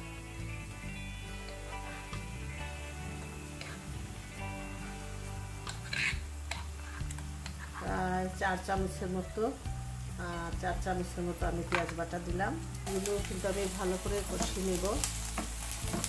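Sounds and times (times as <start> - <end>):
background music: 0.0 - 16.0
oil sizzling in frying pan: 0.0 - 16.0.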